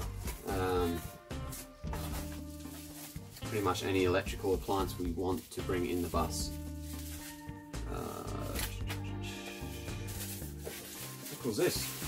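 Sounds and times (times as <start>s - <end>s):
paper packaging rustling: 0.0s - 7.6s, 9.4s - 12.0s
background music: 0.0s - 12.0s.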